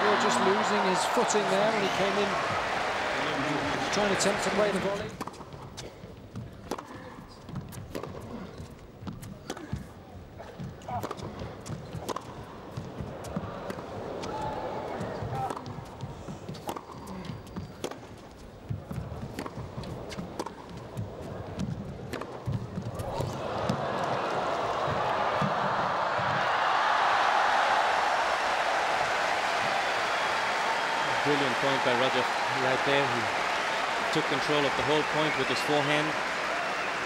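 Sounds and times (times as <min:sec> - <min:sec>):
crowd applause: 0:00.0 - 0:05.1, 0:23.2 - 0:37.0.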